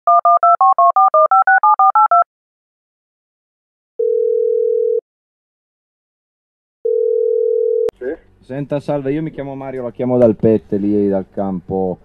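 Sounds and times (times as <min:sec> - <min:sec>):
telephone ringback tone: 0:04.0 - 0:05.0, 0:06.9 - 0:07.9.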